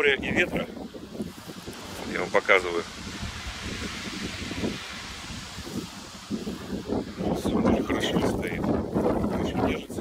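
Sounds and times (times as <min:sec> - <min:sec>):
sea surf: 0:00.0 - 0:10.0
wind gusting on microphone: 0:00.0 - 0:10.0
wind rushing: 0:00.0 - 0:10.0.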